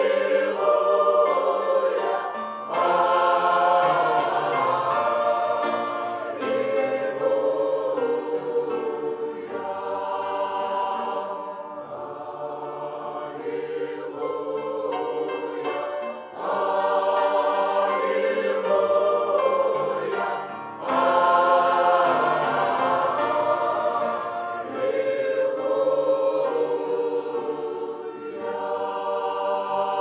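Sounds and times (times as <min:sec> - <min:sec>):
mixed choir singing a hymn: 0:00.0 - 0:30.0.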